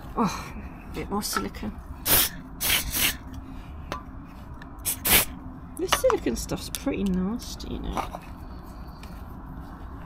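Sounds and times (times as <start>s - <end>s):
aerosol spray can hissing: 4.8s - 5.3s.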